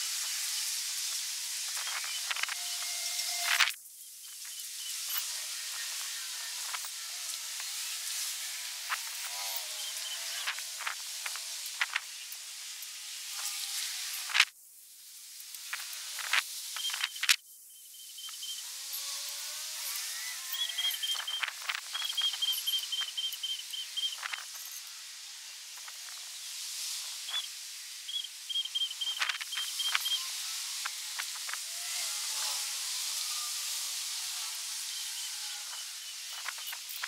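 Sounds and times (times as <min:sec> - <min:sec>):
steady hiss: 0:00.0 - 0:37.0
scattered clicks: 0:15.6 - 0:17.4.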